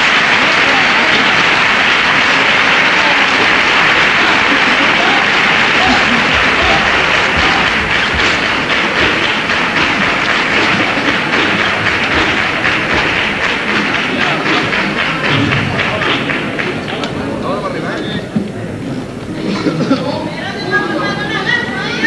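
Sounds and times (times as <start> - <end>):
audience shouting: 0.0 - 16.4
audience applauding: 0.0 - 17.8.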